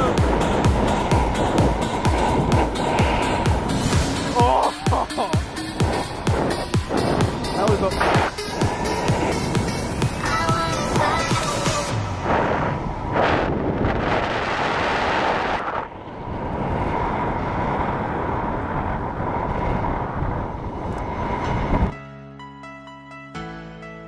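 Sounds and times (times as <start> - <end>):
wind buffeting microphone: 0.0 - 22.0
soft music with single notes: 21.9 - 24.0.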